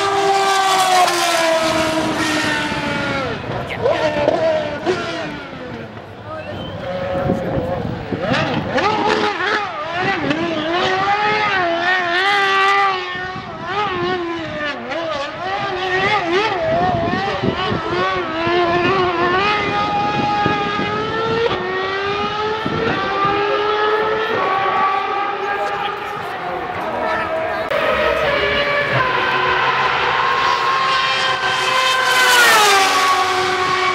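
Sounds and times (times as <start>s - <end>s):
racing car engine revving: 0.0s - 33.9s.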